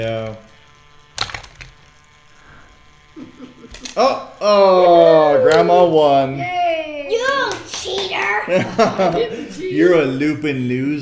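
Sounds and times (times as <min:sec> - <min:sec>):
small electric motor whirring: 0:00.0 - 0:11.0.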